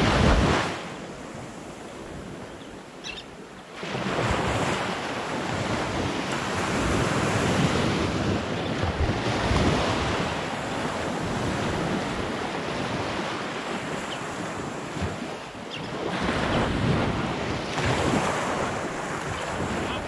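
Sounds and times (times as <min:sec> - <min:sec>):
waves breaking on sand: 0:00.0 - 0:20.0
wind buffeting microphone: 0:00.0 - 0:20.0.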